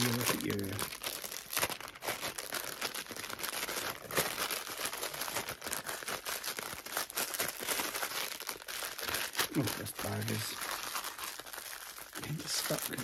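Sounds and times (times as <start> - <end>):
plastic packaging crinkling: 0.0 - 13.0.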